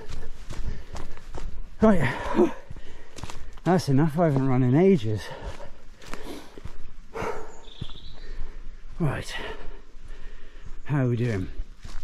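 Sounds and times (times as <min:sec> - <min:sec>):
man panting: 0:00.0 - 0:03.7, 0:05.0 - 0:10.8
footsteps on dirt path: 0:00.0 - 0:12.0.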